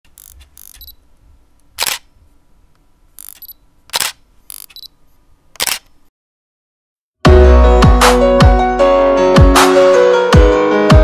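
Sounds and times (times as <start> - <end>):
camera shutter clicks: 0.1 - 1.0, 1.8 - 2.1, 3.2 - 4.9, 5.6 - 6.0
soft camera clicks: 0.1 - 1.0, 1.7 - 2.1, 3.2 - 4.9, 5.5 - 6.0.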